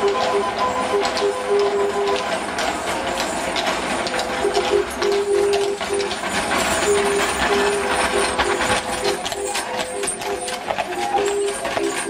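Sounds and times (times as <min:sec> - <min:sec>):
cart wheels clattering on stone: 0:00.0 - 0:12.0
horse hooves on stone: 0:00.0 - 0:12.0.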